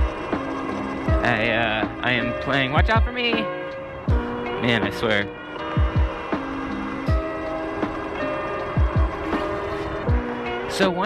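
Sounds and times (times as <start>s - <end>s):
sustained chords: 0.0s - 11.0s
deep kick drum beat: 2.8s - 3.1s.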